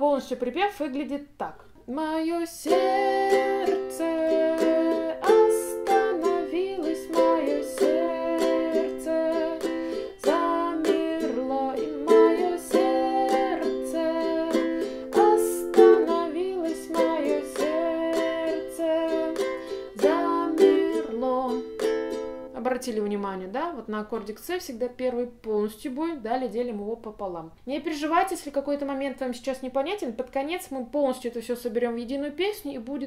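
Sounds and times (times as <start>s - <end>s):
woman singing: 1.8s - 26.9s
ukulele strumming: 2.6s - 22.9s.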